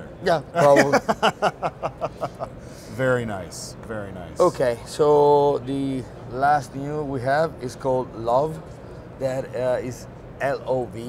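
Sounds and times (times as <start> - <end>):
man laughing: 0.6 - 2.6.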